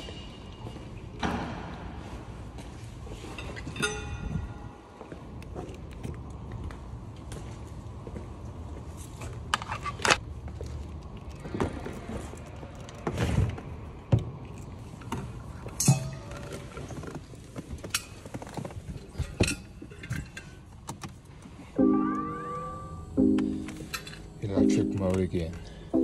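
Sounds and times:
plucked-string music: 21.8 - 25.2.

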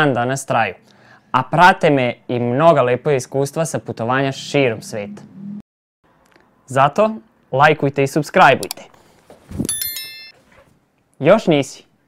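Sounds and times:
high bell ding: 9.6 - 10.4.

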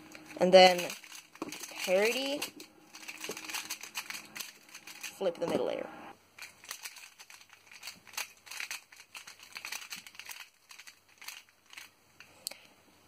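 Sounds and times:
plastic puzzle clicking and rattling: 0.1 - 5.3, 6.4 - 12.3.

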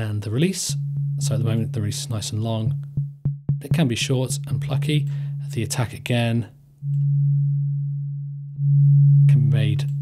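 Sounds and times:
low sine-wave synth note: 0.6 - 6.2, 6.8 - 10.0.

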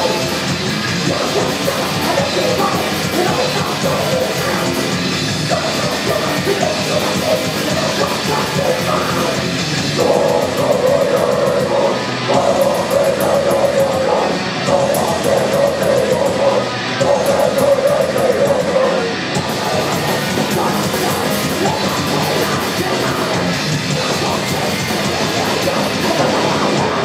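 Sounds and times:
heavy metal band playing: 0.0 - 27.0.

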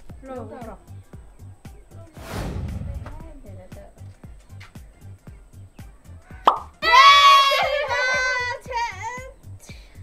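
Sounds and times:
background music with steady beat: 0.0 - 10.0
women shrieking with delight: 6.8 - 8.4.

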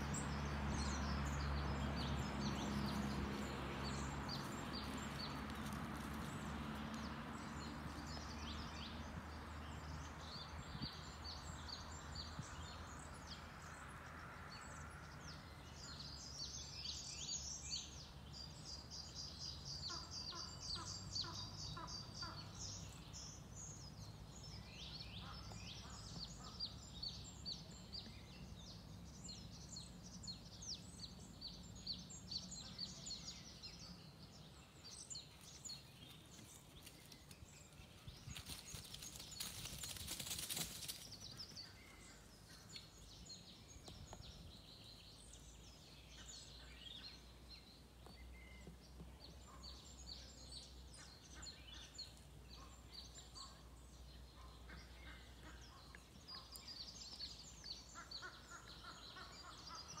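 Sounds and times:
small birds chirping: 0.0 - 60.0.

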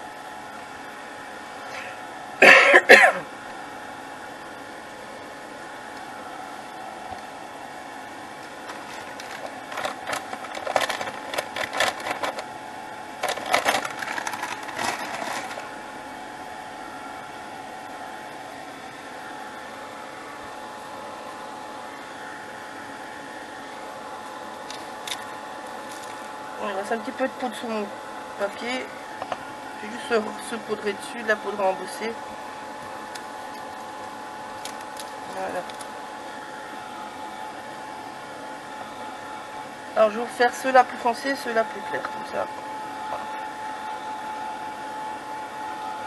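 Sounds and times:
hot-air dryer blowing: 0.0 - 46.0
loud irregular noise: 13.2 - 15.7.

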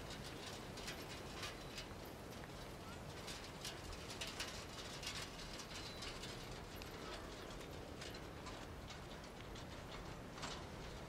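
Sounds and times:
cart clicking and rattling: 0.0 - 11.0
hooves on dirt road: 0.0 - 11.0.

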